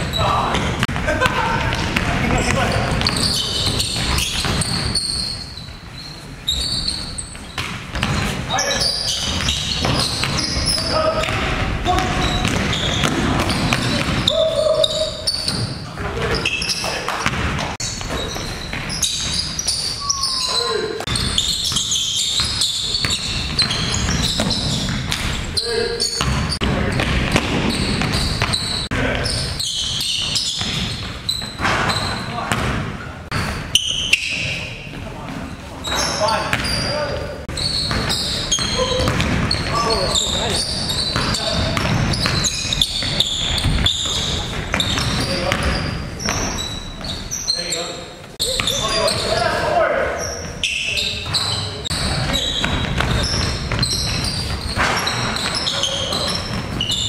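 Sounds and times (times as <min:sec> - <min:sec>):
sneakers squeaking: 0:00.0 - 0:57.0.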